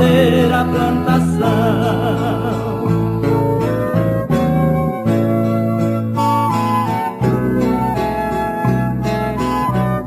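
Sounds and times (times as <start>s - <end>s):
acoustic guitar and bass music: 0.0s - 10.0s.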